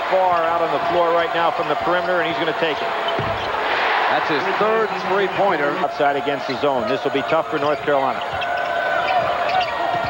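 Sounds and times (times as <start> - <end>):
arena crowd noise: 0.0 - 10.0
sneakers squeaking: 1.7 - 3.6, 6.3 - 10.0.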